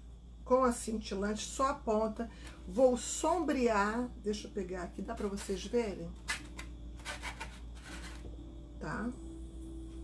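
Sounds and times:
faint steady hum: 0:00.0 - 0:10.0
paintbrush scraping on plastic plate: 0:06.2 - 0:08.3.

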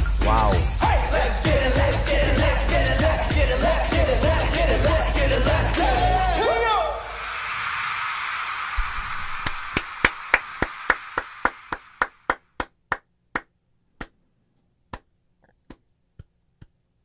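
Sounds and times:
crowd cheering: 0:06.3 - 0:12.3
person clapping: 0:09.4 - 0:14.2, 0:14.9 - 0:16.8.

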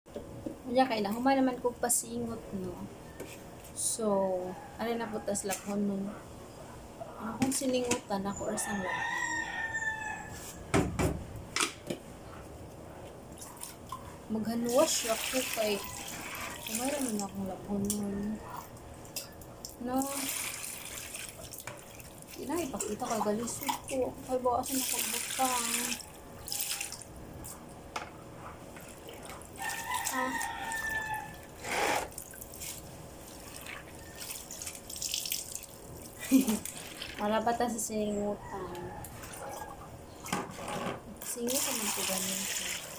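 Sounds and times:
water dripping: 0:14.7 - 0:24.0, 0:24.6 - 0:27.1, 0:28.8 - 0:37.3.

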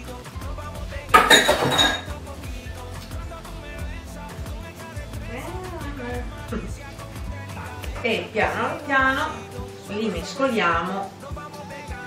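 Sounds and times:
soft background music: 0:00.0 - 0:12.0
metal bowl clattering on counter: 0:01.2 - 0:02.2.

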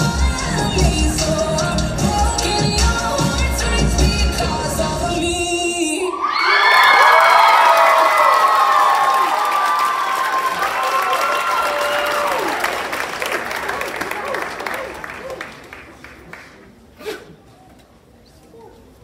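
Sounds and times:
audience cheering and shrieking: 0:06.1 - 0:12.8
audience clapping: 0:06.7 - 0:16.8.

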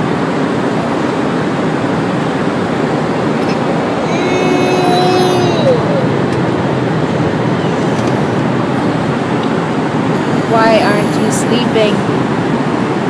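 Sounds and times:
toddler vocal sound: 0:03.4 - 0:06.2.

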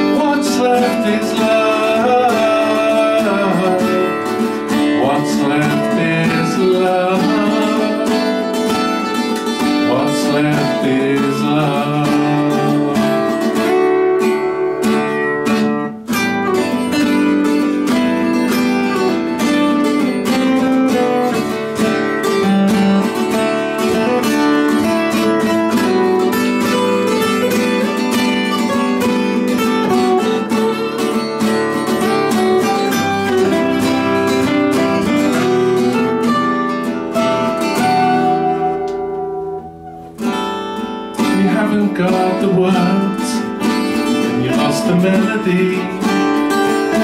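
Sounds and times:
guitars strumming chords: 0:00.0 - 0:47.0.

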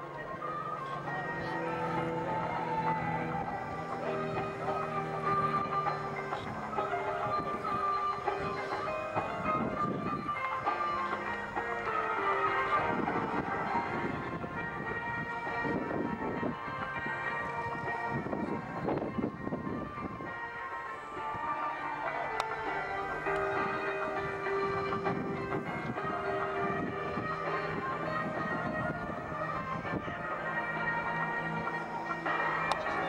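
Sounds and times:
background music with held chords: 0:00.0 - 0:33.0
propeller planes droning: 0:00.0 - 0:33.0.

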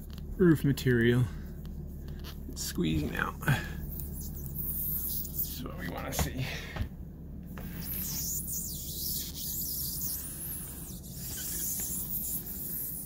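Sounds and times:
gloved hand rubbing rubber membrane: 0:00.0 - 0:06.2, 0:07.6 - 0:13.0
steady low hum: 0:00.0 - 0:13.0.

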